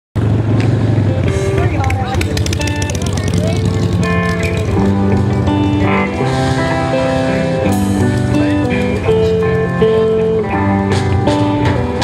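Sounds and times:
bass guitar: 0:00.2 - 0:12.0
drums with ticking cymbals: 0:00.6 - 0:12.0
electric lead guitar notes: 0:00.6 - 0:12.0.

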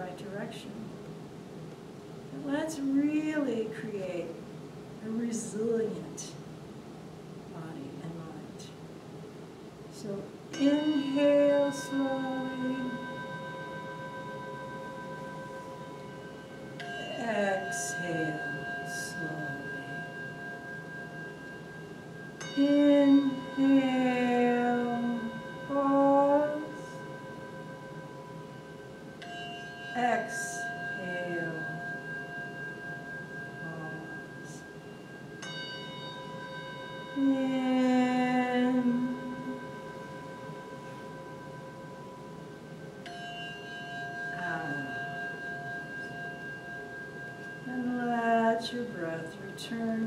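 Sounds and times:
sustained bell-like drone: 0:02.2 - 0:06.5, 0:09.9 - 0:50.0.

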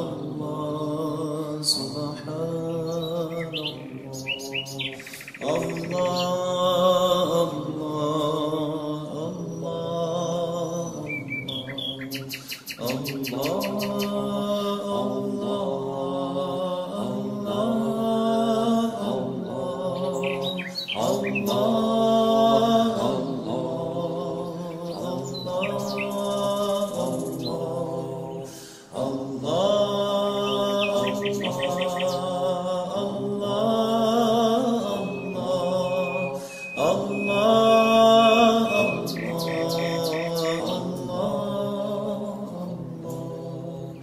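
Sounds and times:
slow chanting in held notes: 0:00.0 - 0:44.0
songbirds chirping: 0:00.0 - 0:44.0
bird trills: 0:02.7 - 0:06.6, 0:09.4 - 0:14.8, 0:20.0 - 0:23.2, 0:24.5 - 0:27.6, 0:30.4 - 0:32.4, 0:34.2 - 0:40.9.

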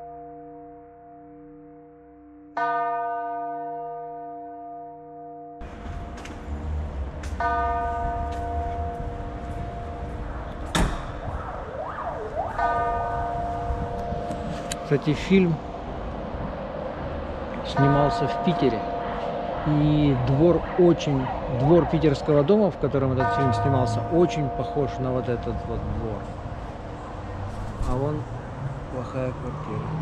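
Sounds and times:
outdoor noise: 0:00.0 - 0:30.0
sharp knock: 0:10.7 - 0:11.2
bell ringing: 0:23.2 - 0:25.8.

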